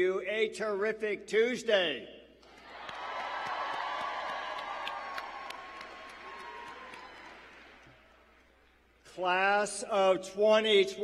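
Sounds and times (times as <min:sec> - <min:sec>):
audience cheering and applauding: 0:02.5 - 0:08.4
scattered hand claps: 0:02.7 - 0:08.0.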